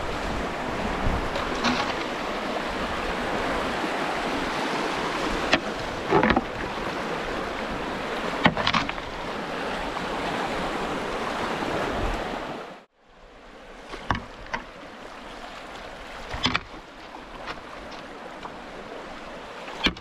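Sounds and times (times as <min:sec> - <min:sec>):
water rushing over rocks: 0:00.0 - 0:12.9, 0:13.5 - 0:20.0.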